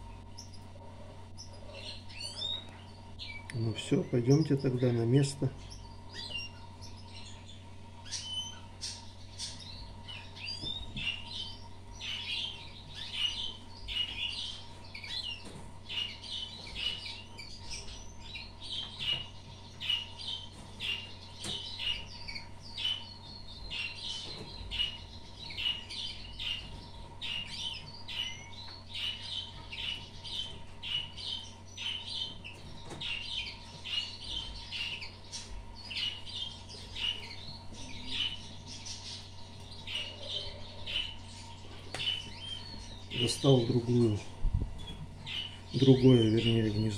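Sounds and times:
small songbirds chirping: 0.0 - 46.9.

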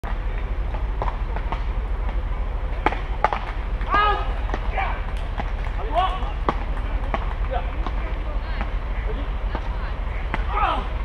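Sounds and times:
low rumble: 0.0 - 11.0
paddles hitting ball: 2.8 - 8.8.

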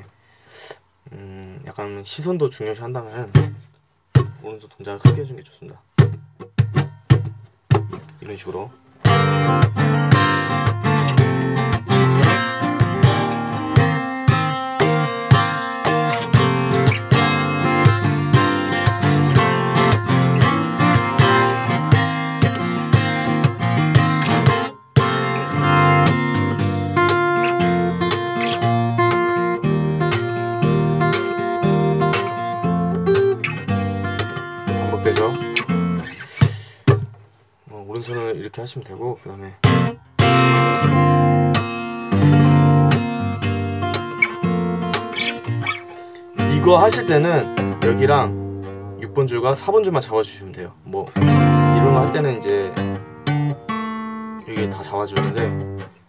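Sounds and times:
fingerstyle acoustic guitar: 3.2 - 38.6, 39.6 - 50.3, 51.0 - 56.0.

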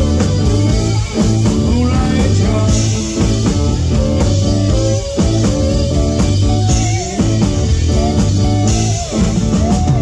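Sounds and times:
drum kit beat: 0.0 - 10.0
electric guitar: 0.0 - 10.0
keyboards: 0.0 - 10.0.

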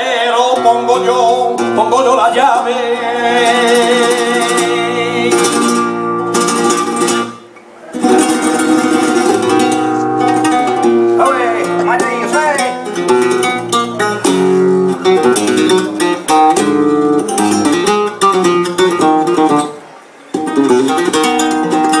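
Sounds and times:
person singing: 0.0 - 5.9
flamenco acoustic guitar: 0.0 - 22.0.

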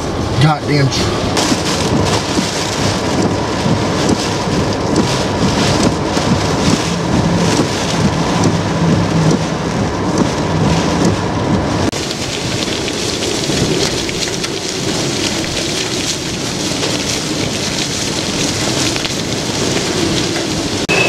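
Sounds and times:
heavy rain beating on a car: 0.0 - 21.0
hurricane wind gusts: 0.0 - 21.0.

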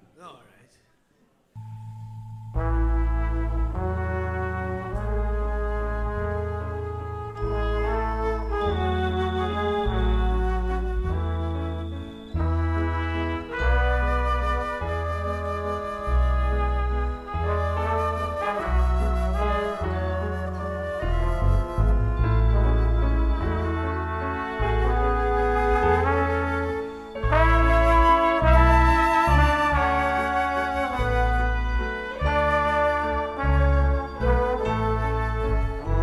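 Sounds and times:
piano: 1.6 - 36.0
heavy bass line: 2.2 - 14.6, 18.6 - 36.0
horn section melody: 2.5 - 36.0
organ: 2.6 - 36.0.

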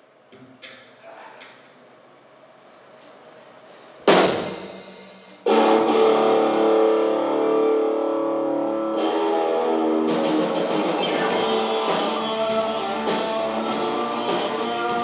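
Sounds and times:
drums and cymbals: 4.1 - 6.2, 10.0 - 15.0
electric guitar chords: 5.4 - 15.0
rock band playing live: 5.4 - 15.0.

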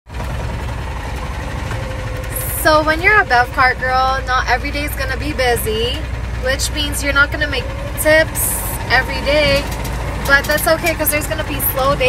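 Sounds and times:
cart engine low rumble: 0.1 - 12.0
cart rattling: 0.1 - 12.0.

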